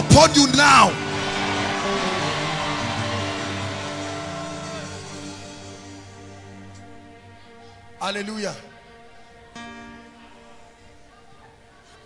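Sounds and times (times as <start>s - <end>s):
soft music of held chords: 0.0s - 12.0s.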